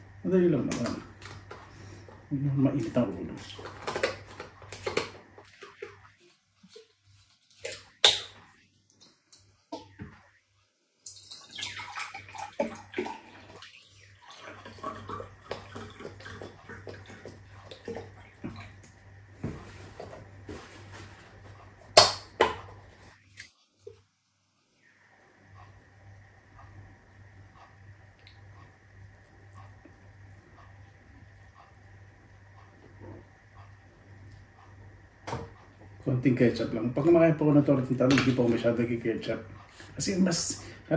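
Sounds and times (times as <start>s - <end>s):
faint steady hum: 0.0s - 40.9s.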